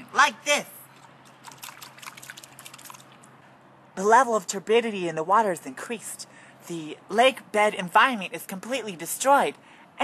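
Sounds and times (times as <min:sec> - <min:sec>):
water sloshing: 0:00.9 - 0:03.4.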